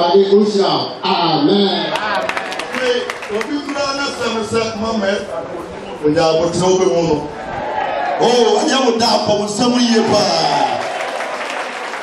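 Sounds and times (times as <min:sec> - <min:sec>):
man speaking into a microphone: 0:00.0 - 0:07.4, 0:08.2 - 0:10.8
audience applauding: 0:01.9 - 0:04.5, 0:09.8 - 0:12.0.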